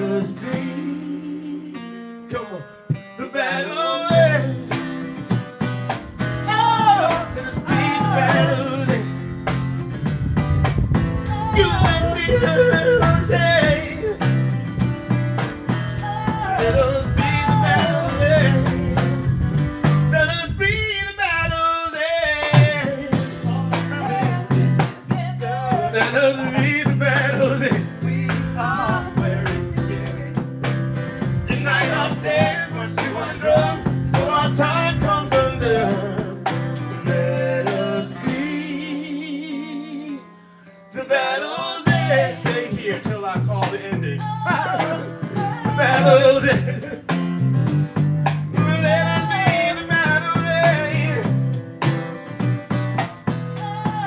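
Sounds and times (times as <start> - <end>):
drum kit: 0.0 - 1.2, 2.8 - 3.2, 4.0 - 20.4, 22.4 - 39.4, 41.6 - 54.0
man singing: 0.0 - 1.6, 2.3 - 5.0, 6.4 - 9.3, 11.2 - 14.5, 16.0 - 19.5, 20.1 - 40.3, 40.9 - 47.2, 48.5 - 51.5
acoustic guitar: 0.0 - 54.0
electric bass guitar: 0.0 - 54.0.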